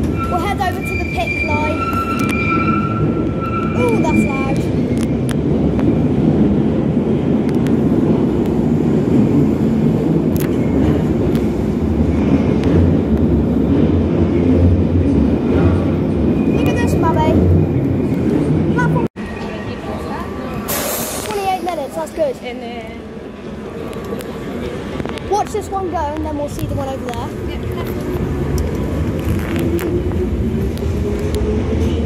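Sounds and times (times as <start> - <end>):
train rumbling past: 0.0 - 32.0.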